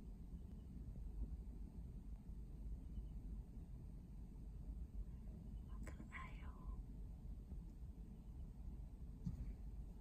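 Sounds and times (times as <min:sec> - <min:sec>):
faint low rumble: 0:00.0 - 0:10.0
person whispering: 0:05.6 - 0:06.8.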